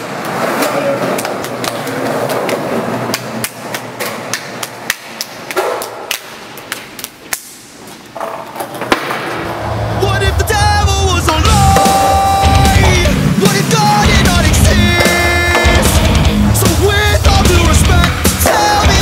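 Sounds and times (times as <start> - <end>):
hands slapping and clapping: 2.5 - 7.6.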